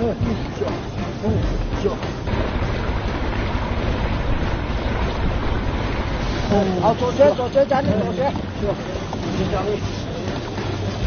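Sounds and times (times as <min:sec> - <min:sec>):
water rushing: 0:00.0 - 0:11.0
wind buffeting microphone: 0:00.0 - 0:11.0.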